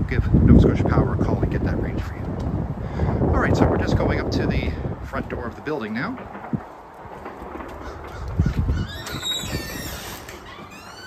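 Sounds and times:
outdoor background noise: 0:00.0 - 0:11.0
low thuds: 0:01.4 - 0:11.0.

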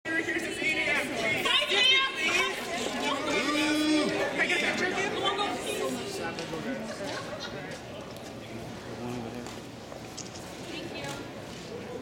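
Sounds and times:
crowd chatter in echoing hall: 0:00.1 - 0:12.0.

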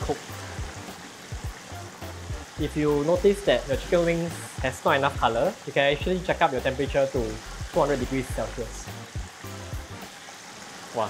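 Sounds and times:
background music: 0:00.0 - 0:10.3
chicken deep-frying in oil: 0:00.0 - 0:11.0.

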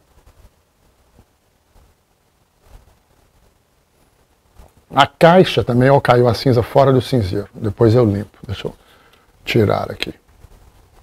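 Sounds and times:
man speaking: 0:04.9 - 0:08.8, 0:09.4 - 0:10.2.

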